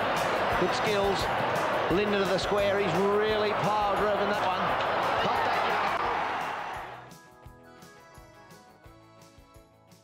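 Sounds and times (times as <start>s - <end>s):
crowd noise: 0.0s - 7.1s.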